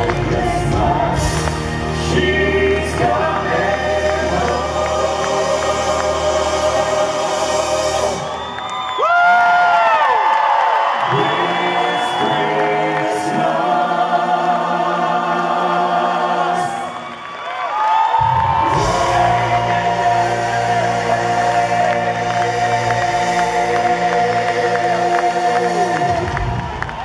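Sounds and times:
backing choir: 0.0 - 27.0.

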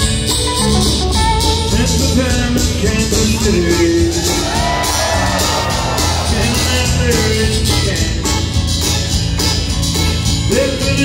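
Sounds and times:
accordion: 0.0 - 11.0
live country band playing: 0.0 - 11.0.

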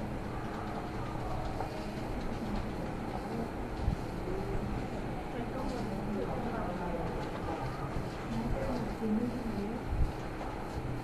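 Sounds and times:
faint indistinct murmuring: 0.0 - 11.0.

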